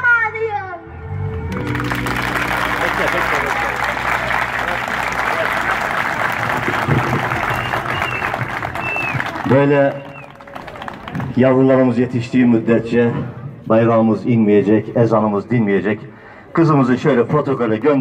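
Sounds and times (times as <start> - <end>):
low background music: 0.0 - 7.8
audience applauding: 1.3 - 11.7.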